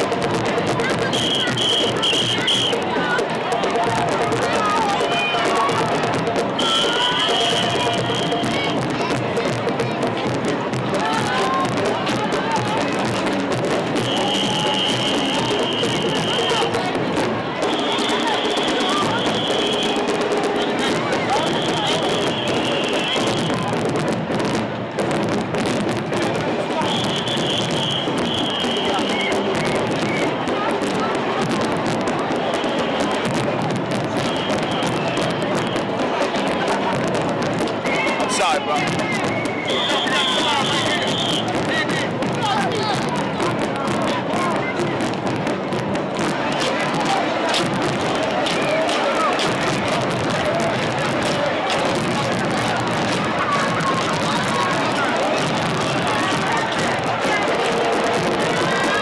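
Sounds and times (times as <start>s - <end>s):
marching band music: 0.0s - 10.2s, 10.9s - 24.5s
crowd voices: 0.0s - 59.0s
shrill high whistle tone: 6.6s - 8.6s, 14.0s - 16.7s, 26.8s - 30.3s, 39.1s - 41.5s.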